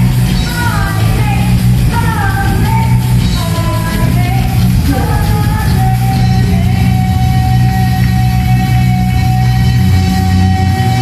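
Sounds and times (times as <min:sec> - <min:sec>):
punk band playing live: 0:00.0 - 0:11.0
woman singing: 0:00.0 - 0:11.0.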